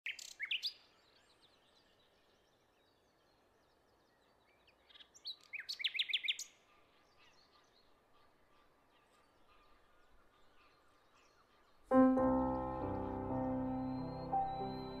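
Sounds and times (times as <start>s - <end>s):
songbird chirping: 0.0s - 15.0s
piano: 11.9s - 15.0s.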